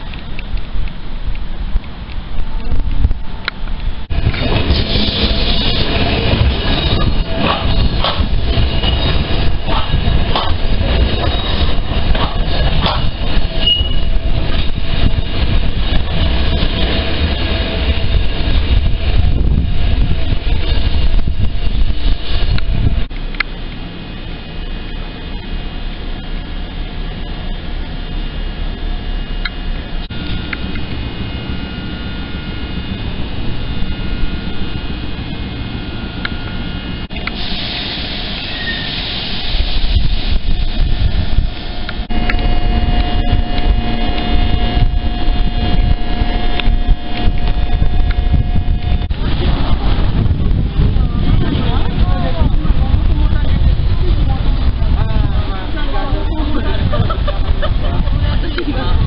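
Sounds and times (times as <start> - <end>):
tram rumbling past: 0.0 - 59.0.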